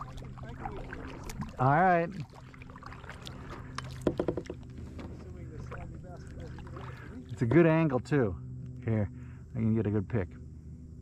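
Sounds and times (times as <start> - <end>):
paddle splashing water: 0.0 - 7.6
paddle knocking plastic hull: 3.8 - 5.9.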